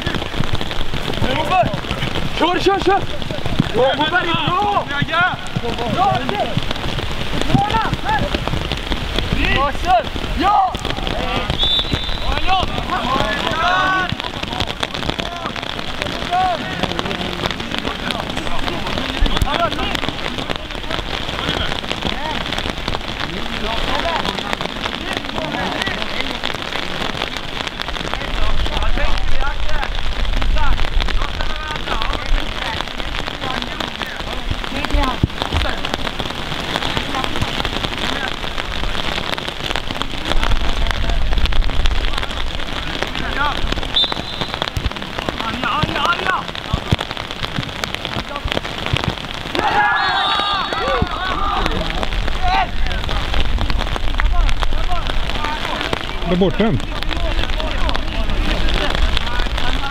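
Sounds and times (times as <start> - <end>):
wind rumbling on microphone: 0.0 - 49.7, 50.8 - 59.9
steady noisy hiss: 0.0 - 59.9
distant players shouting: 49.4 - 53.1.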